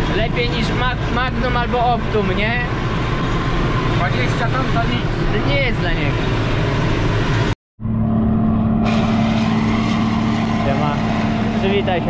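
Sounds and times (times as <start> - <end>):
tractor diesel engine running: 0.0 - 12.0.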